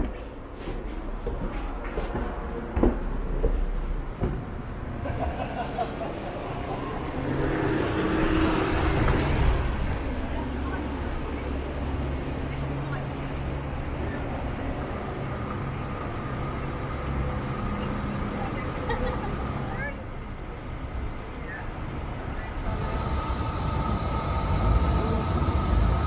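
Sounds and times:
low hum of engines: 0.0 - 26.0
vehicle passing: 4.5 - 13.7.

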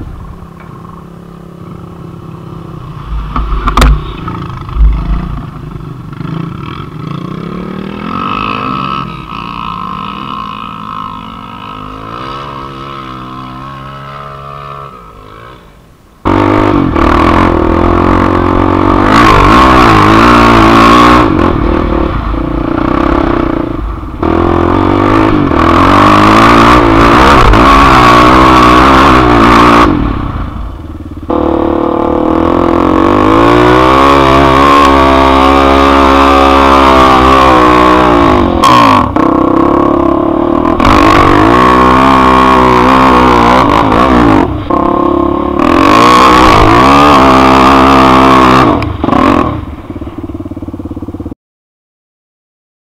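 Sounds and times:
quad engine revving: 3.1 - 15.5, 16.2 - 30.4, 31.3 - 50.7.

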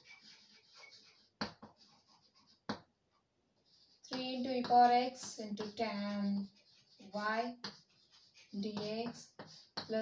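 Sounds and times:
chalk scratching on blackboard: 0.0 - 2.9, 3.6 - 10.0
chalk tapping on board: 0.0 - 2.9, 3.6 - 10.0.

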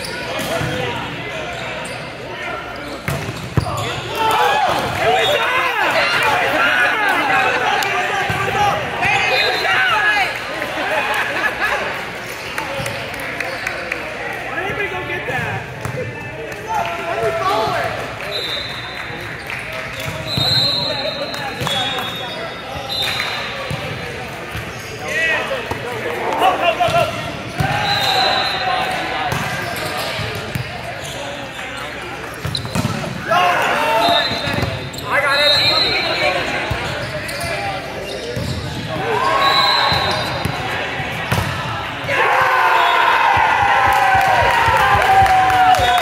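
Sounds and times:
sneaker squeaks on court floor: 0.0 - 4.2, 18.3 - 25.4, 27.1 - 33.1, 33.9 - 40.7
players calling out: 0.0 - 46.0
spectators talking: 0.0 - 46.0.

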